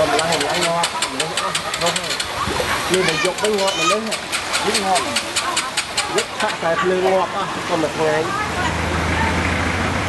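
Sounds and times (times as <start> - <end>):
people talking: 0.0 - 2.2, 2.8 - 9.5
small engine idling with ticking: 0.0 - 2.4.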